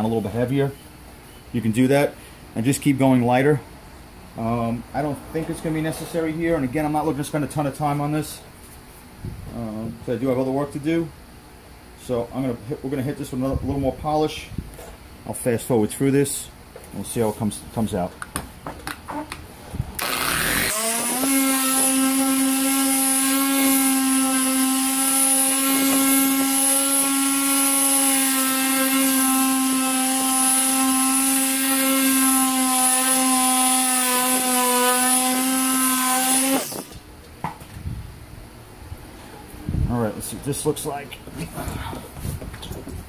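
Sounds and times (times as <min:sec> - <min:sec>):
orbital polisher motor whine: 0:20.0 - 0:36.9.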